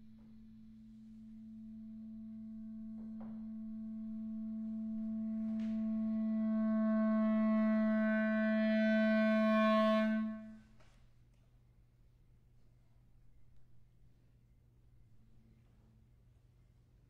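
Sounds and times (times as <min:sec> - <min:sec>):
clarinet holding long low note: 0:00.0 - 0:10.8.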